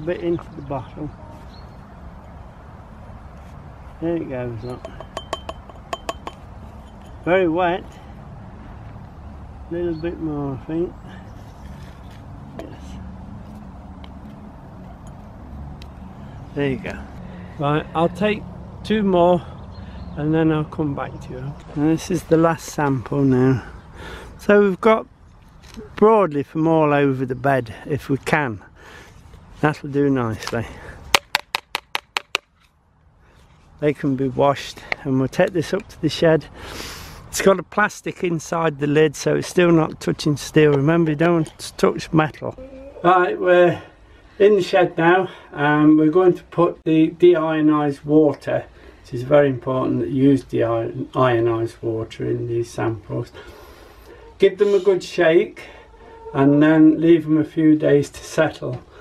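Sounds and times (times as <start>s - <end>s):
plastic tube tapping glass jar: 4.8s - 6.4s, 31.1s - 32.5s.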